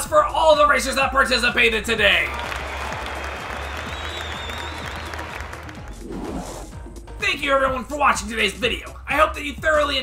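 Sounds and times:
crowd applause: 2.2s - 6.0s.

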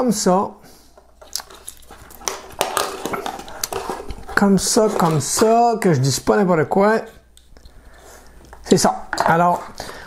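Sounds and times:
rustling of wires being handled: 1.0s - 6.2s.

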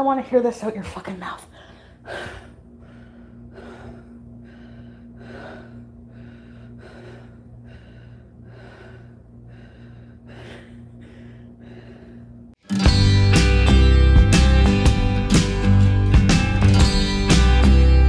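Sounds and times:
heavy breathing: 1.4s - 12.6s
loud guitar music: 12.6s - 18.0s.

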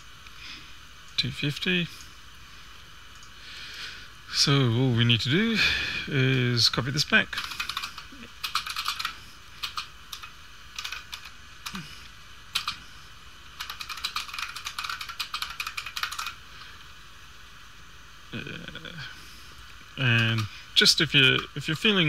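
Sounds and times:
computer keyboard typing: 7.4s - 11.8s, 12.5s - 12.8s, 13.6s - 16.4s, 20.0s - 20.5s, 21.1s - 21.8s.

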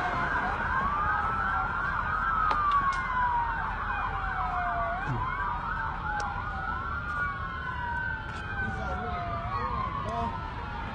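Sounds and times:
police sirens wailing: 0.0s - 10.9s
police sirens yelping: 0.0s - 10.9s.

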